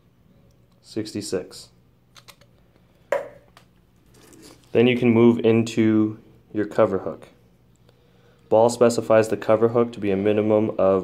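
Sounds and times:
sharp knock on tabletop: 3.1s - 3.5s.

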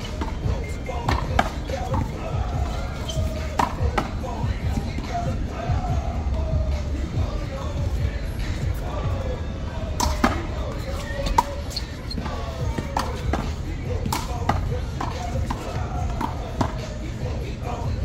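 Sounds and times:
background music: 0.0s - 18.0s
background voices: 0.0s - 18.0s.

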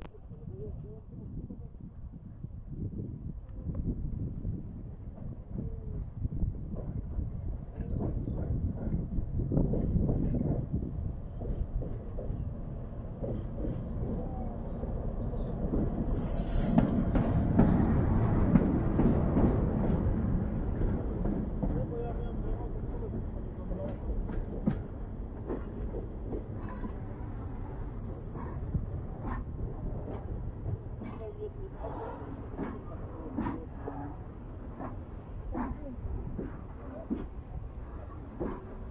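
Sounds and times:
diesel locomotive passing on rails: 3.2s - 38.9s.

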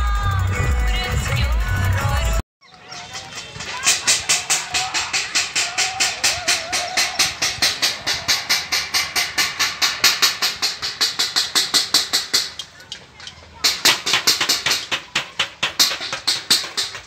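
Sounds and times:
metal plates beaten rapidly: 3.1s - 17.0s.

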